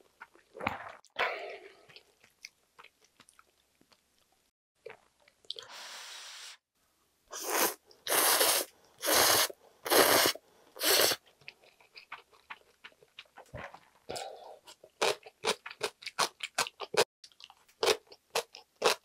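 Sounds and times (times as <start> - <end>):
wet chewing with mouth clicks: 1.7 - 5.6, 11.3 - 19.0.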